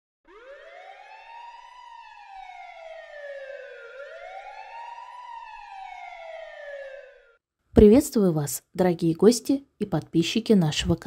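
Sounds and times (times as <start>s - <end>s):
wailing siren: 0.2s - 7.4s.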